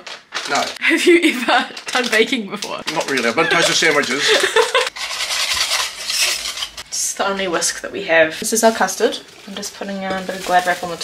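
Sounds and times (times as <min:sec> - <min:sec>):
whisk scraping a saucepan: 0:04.8 - 0:07.0.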